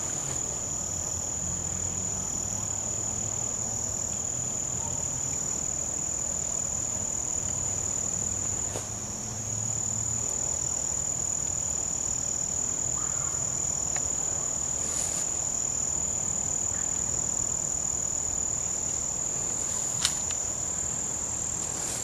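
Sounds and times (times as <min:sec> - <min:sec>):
crickets and insects trilling: 0:00.0 - 0:22.0.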